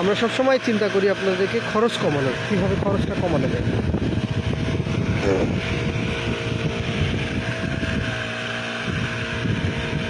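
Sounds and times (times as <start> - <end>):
brush cutter engine running: 0.0 - 10.0
weeder head churning soil: 0.0 - 10.0.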